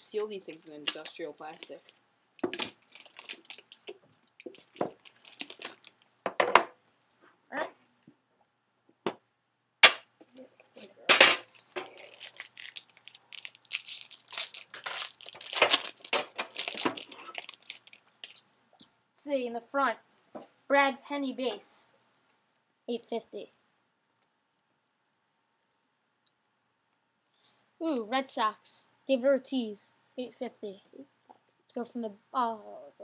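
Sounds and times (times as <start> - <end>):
plastic shrink-wrap tearing and crinkling: 0.5 - 6.1, 10.6 - 18.4.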